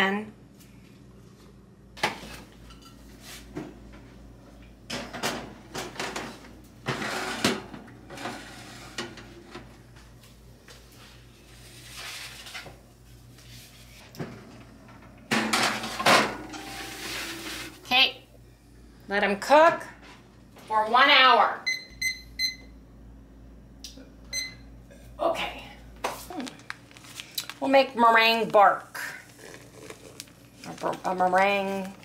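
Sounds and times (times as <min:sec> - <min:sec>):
oven door: 0:14.2 - 0:18.0
baking sheets clattering on racks: 0:15.3 - 0:17.9.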